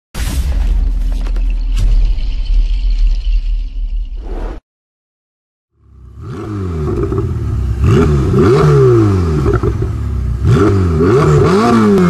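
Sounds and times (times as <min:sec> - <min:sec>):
brief whoosh: 0:04.2 - 0:04.6.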